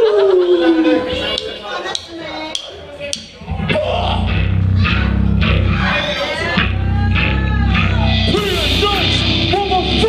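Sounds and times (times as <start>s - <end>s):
crowd chatter: 0.0s - 10.0s
drumstick count-in clicks: 1.4s - 3.3s
hardcore band playing: 3.1s - 10.0s.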